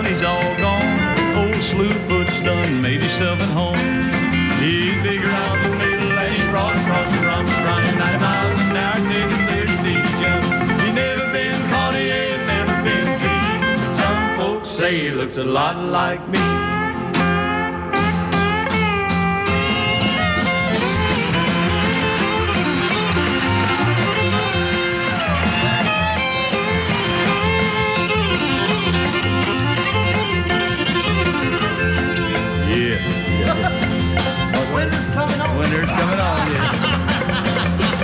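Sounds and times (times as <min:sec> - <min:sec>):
plucked ringing string notes: 0:00.0 - 0:14.5, 0:16.4 - 0:38.0
bass line: 0:00.0 - 0:38.0
strummed acoustic guitar: 0:00.0 - 0:38.0
fiddle playing lead: 0:16.6 - 0:38.0.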